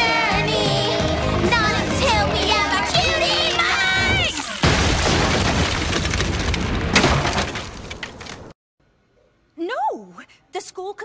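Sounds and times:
explosion blast with debris: 4.6s - 8.5s.

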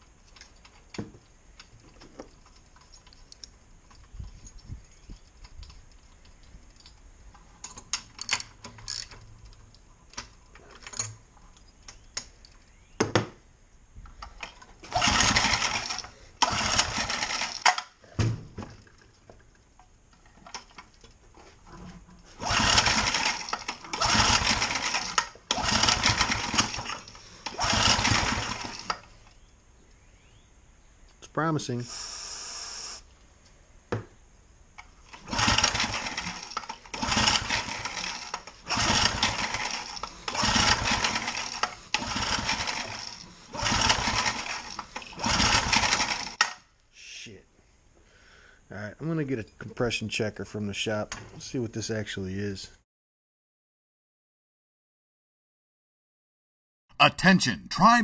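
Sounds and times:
small engine pull-start cranking: 14.4s - 18.0s, 22.4s - 29.2s, 35.1s - 46.6s.

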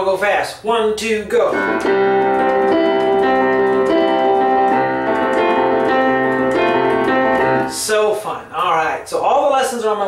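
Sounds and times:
piano bass line: 1.1s - 8.6s
rock piano chords: 1.4s - 8.1s.

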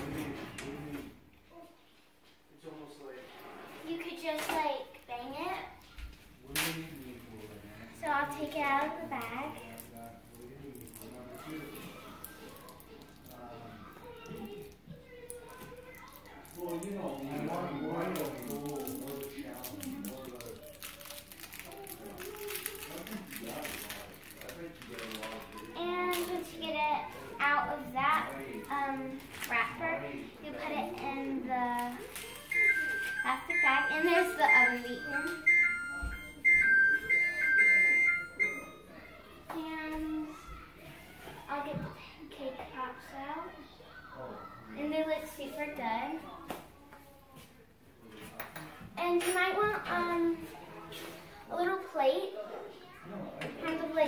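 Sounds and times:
children chattering: 11.2s - 18.2s, 25.2s - 47.6s
oven timer beeping: 32.2s - 38.9s.

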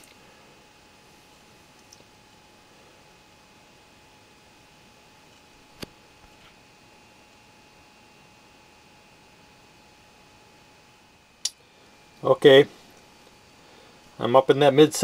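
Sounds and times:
faint steady hum: 0.0s - 15.0s.

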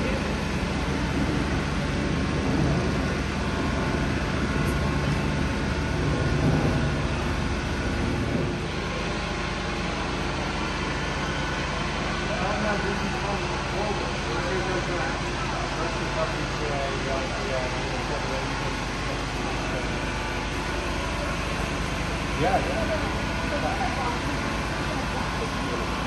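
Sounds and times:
low background rumble: 0.0s - 12.1s
indistinct talking: 12.1s - 26.0s.

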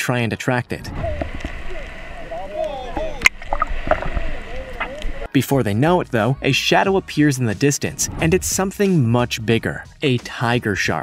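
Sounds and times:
faint indistinct voices: 0.8s - 5.4s
boat rumble on water: 0.8s - 10.0s.

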